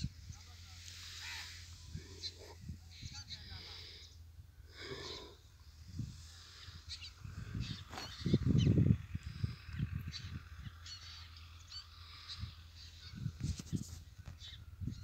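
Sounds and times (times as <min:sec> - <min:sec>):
rumble on microphone: 0:00.0 - 0:11.0, 0:12.2 - 0:15.0
steady low hum: 0:00.0 - 0:13.4
birds chirping: 0:00.0 - 0:13.5, 0:14.1 - 0:15.0.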